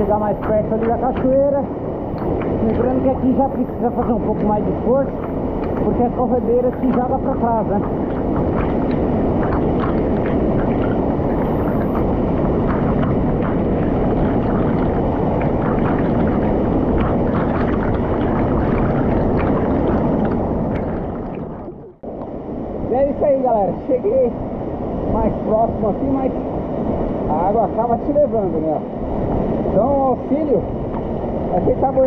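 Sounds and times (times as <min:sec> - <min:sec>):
water splashing close: 0:00.0 - 0:22.1
waterfall rushing: 0:02.0 - 0:22.1.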